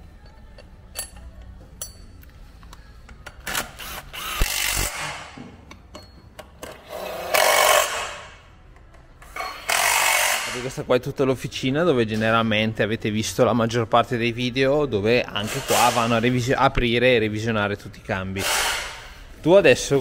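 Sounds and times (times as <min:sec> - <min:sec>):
metal clinking: 0:00.2 - 0:02.8.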